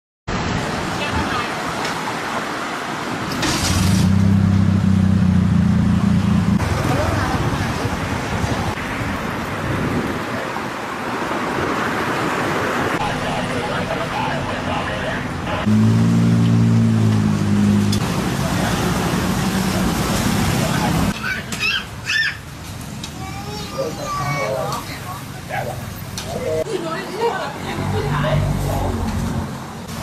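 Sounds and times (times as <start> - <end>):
passing cars and motorbikes: 0.3 - 30.0
vehicle engine humming close by: 3.1 - 21.2.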